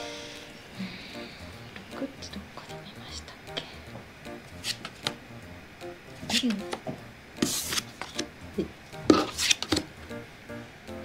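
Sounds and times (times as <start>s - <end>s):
soft background music: 0.0s - 11.0s
playing cards on wooden table: 4.6s - 5.2s, 6.2s - 10.0s
sharp card clicks: 4.6s - 5.2s, 7.4s - 8.3s.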